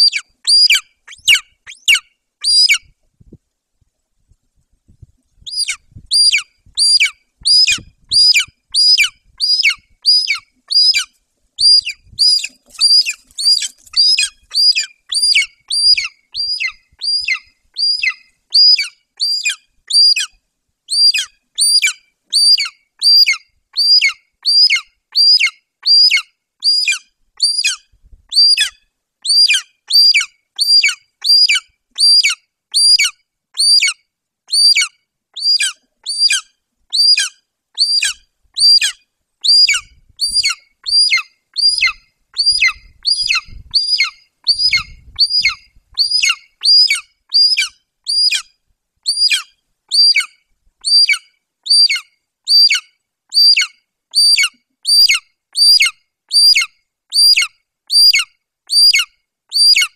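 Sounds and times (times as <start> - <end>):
eagle chick begging call: 0.0 - 2.9, 5.4 - 59.9.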